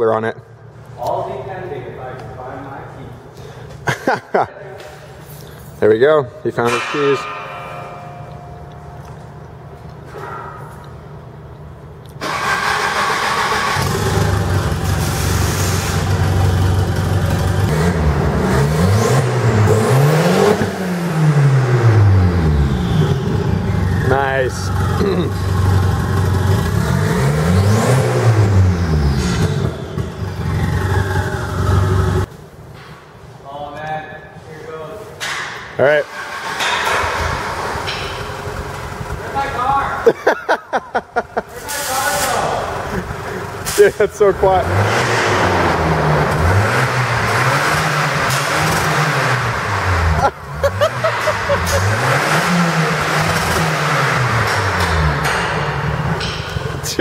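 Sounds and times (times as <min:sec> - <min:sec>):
loud car engine revving: 0:12.2 - 0:32.3, 0:42.7 - 0:56.8.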